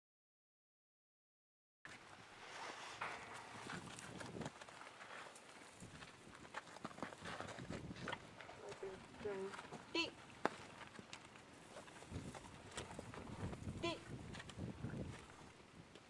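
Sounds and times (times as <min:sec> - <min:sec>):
horse hoof steps on dirt: 0:02.7 - 0:16.0.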